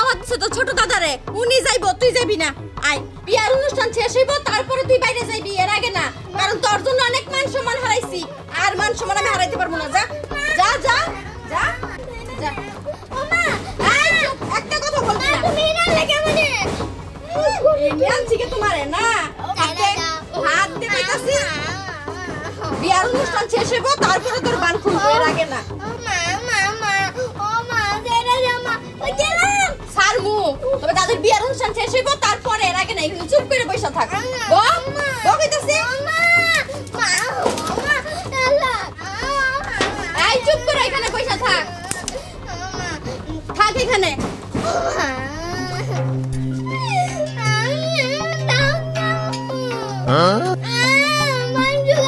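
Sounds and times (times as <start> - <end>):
girl crying out: 44.6 - 52.0.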